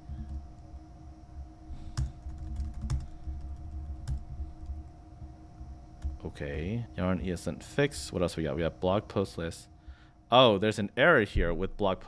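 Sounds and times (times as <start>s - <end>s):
faint steady hum: 0.0s - 12.0s
computer keyboard typing: 1.9s - 4.8s.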